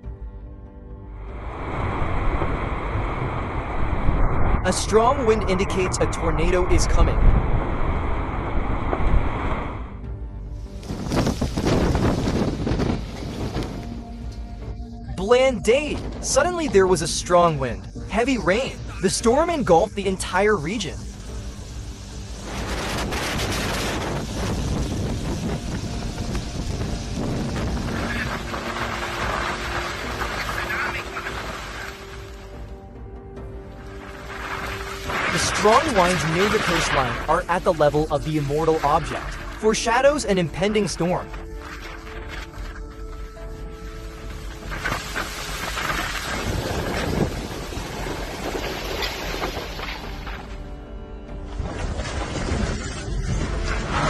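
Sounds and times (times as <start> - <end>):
storm wind gusting through trees: 10.7 - 14.7, 21.0 - 32.2, 43.4 - 49.9
wind buffeting microphone: 10.8 - 14.1, 22.5 - 30.3, 46.2 - 49.6
faint music: 13.8 - 46.1.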